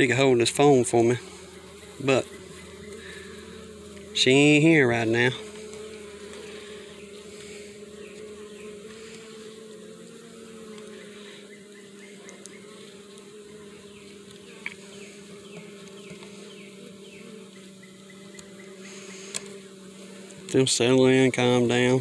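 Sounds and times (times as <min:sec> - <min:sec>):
bees humming: 0:00.0 - 0:22.0.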